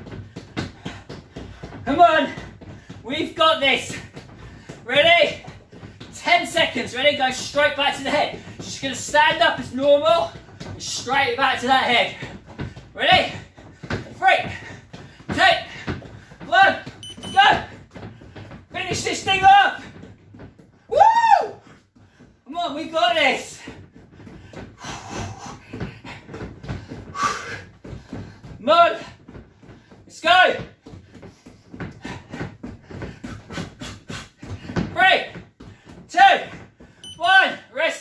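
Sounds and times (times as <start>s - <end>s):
man shouting with effort: 20.9s - 21.6s.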